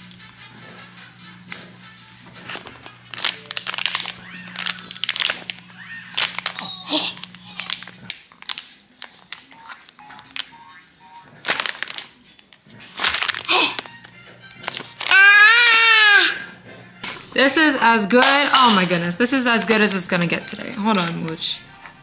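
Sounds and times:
background music: 0:00.0 - 0:22.0
foil pouch crinkling: 0:02.2 - 0:16.3.

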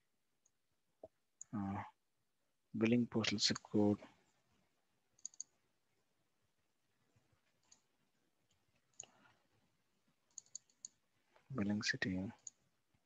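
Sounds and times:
computer mouse clicks: 0:05.2 - 0:05.6, 0:07.6 - 0:07.9, 0:08.5 - 0:09.2, 0:10.2 - 0:11.0, 0:12.4 - 0:12.6.

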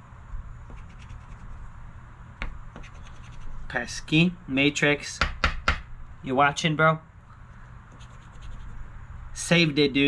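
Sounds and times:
coin scratching a ticket: 0:00.7 - 0:01.6, 0:02.8 - 0:03.6, 0:08.0 - 0:08.8.

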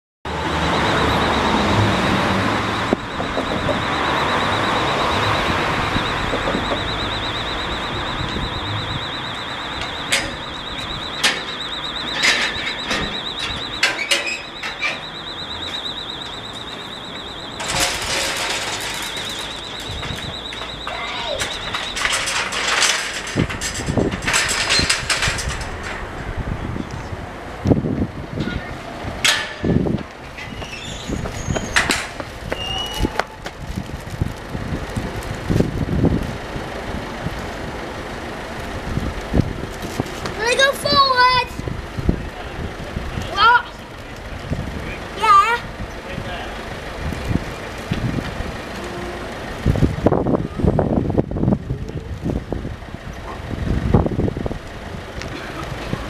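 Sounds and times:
car passing: 0:00.3 - 0:22.2
level crossing warning alarm: 0:00.3 - 0:25.6
metal gates clanking shut: 0:09.8 - 0:10.4, 0:11.2 - 0:15.1, 0:17.6 - 0:26.1, 0:28.4 - 0:29.7.

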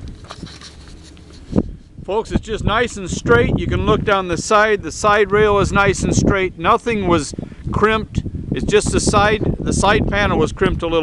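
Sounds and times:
footsteps on gravel: 0:00.0 - 0:02.0
wind rumble on microphone: 0:00.0 - 0:11.0.

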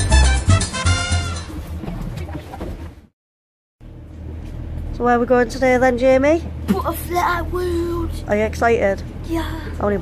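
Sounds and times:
bus interior rumble: 0:00.0 - 0:03.1, 0:03.9 - 0:10.0.

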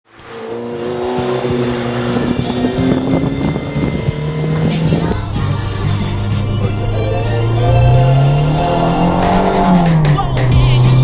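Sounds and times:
background music: 0:00.1 - 0:11.0
car engine running: 0:00.1 - 0:11.0.

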